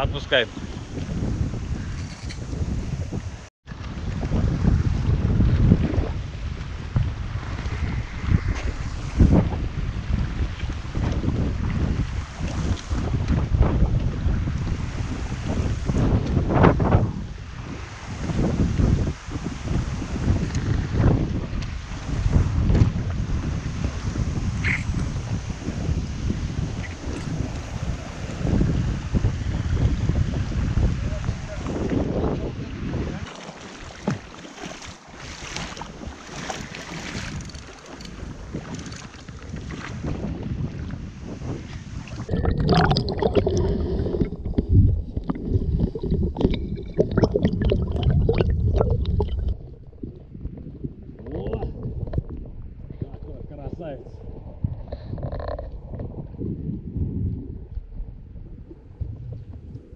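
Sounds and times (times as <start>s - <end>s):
wind buffeting microphone: 0.0s - 59.9s
shallow river rushing: 32.9s - 39.3s, 41.3s - 50.1s.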